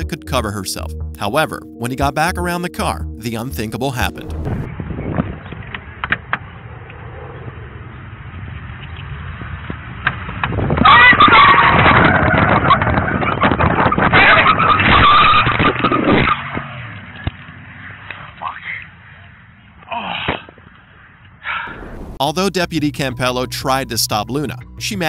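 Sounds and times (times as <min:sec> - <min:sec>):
car pulling away: 0:15.7 - 0:18.1.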